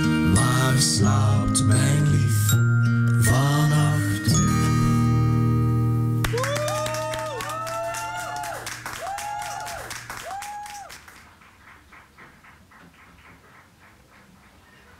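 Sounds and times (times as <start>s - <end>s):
audience clapping and whooping: 6.2s - 14.9s.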